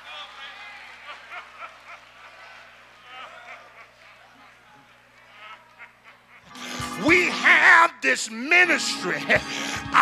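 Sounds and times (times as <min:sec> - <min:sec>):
congregation laughing: 0:00.0 - 0:07.9, 0:08.6 - 0:10.0.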